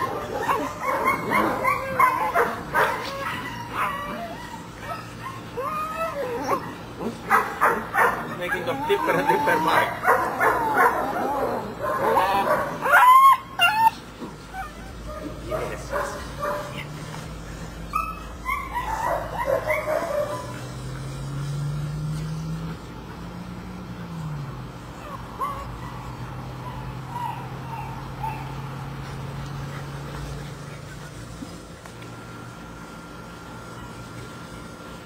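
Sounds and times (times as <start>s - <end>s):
puppy yelps: 0.0s - 15.4s, 17.9s - 20.5s, 25.0s - 28.6s
puppies yipping and barking: 0.0s - 23.3s, 24.0s - 32.2s.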